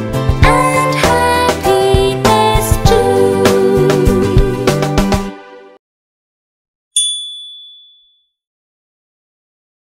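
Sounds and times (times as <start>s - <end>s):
high bright chime: 7.0s - 8.3s.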